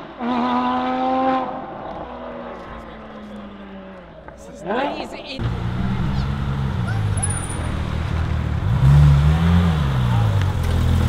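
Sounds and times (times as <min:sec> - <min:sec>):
car driving away: 0:05.4 - 0:11.0
deep car engine rumble: 0:05.4 - 0:11.0.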